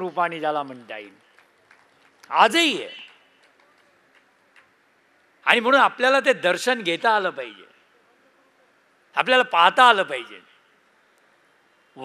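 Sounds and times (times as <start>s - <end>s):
man's amplified speech: 0.0s - 1.2s, 2.3s - 3.2s, 5.4s - 7.8s, 9.2s - 10.6s.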